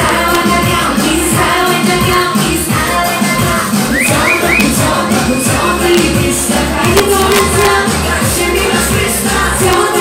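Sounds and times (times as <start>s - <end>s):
amplified backing music: 0.0s - 10.0s
woman singing live: 0.0s - 10.0s.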